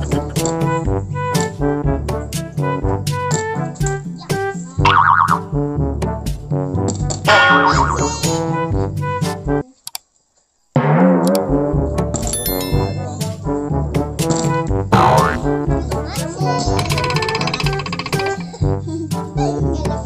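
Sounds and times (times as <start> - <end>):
comic background music: 0.0 - 9.6, 10.8 - 20.0
cartoon boing sound effects: 4.8 - 5.5, 7.3 - 8.4, 14.9 - 15.7.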